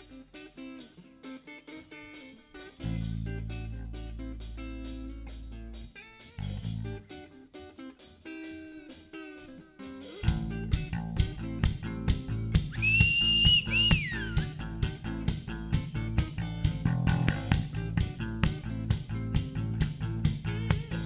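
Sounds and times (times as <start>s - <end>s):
bass guitar: 0.0s - 21.0s
drum kit beat: 0.0s - 21.0s
electric guitar: 0.0s - 21.0s
high whistle sliding down: 12.7s - 14.4s.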